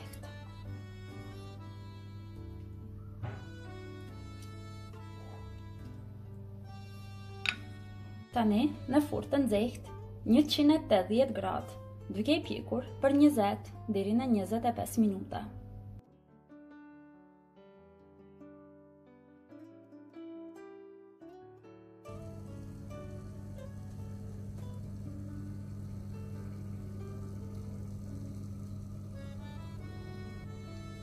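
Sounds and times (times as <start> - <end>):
plucked-string background music: 0.0 - 31.0
oven fan humming: 22.1 - 31.0.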